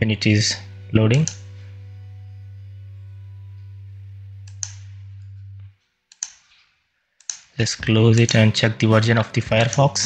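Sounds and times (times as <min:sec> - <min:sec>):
low electrical hum: 0:00.0 - 0:06.6.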